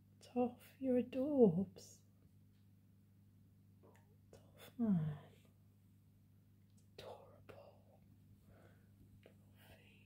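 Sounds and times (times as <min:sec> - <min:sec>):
low steady hum: 0:00.0 - 0:10.0
faint whispers: 0:07.0 - 0:08.0, 0:09.3 - 0:10.0.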